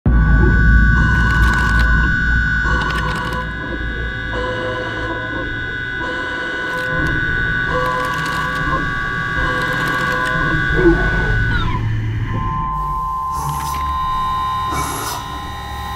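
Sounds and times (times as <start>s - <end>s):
low rumble: 0.0s - 6.1s
milling machine high whine: 0.1s - 15.9s.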